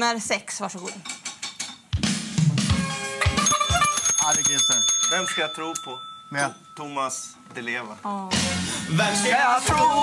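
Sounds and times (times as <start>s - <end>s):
drum kit beat: 0.9s - 4.5s, 8.1s - 10.0s.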